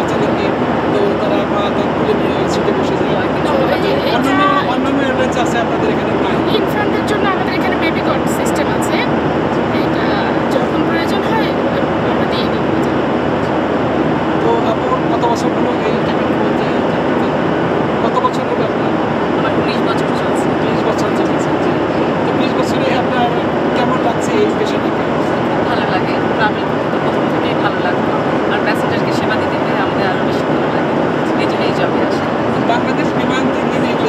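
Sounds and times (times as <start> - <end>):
airliner cabin noise: 0.0 - 34.0
voices talking: 0.0 - 34.0.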